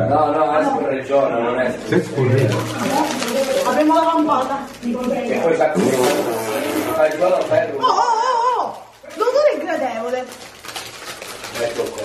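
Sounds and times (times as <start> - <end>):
plastic wrappers crinkling: 1.7 - 12.0.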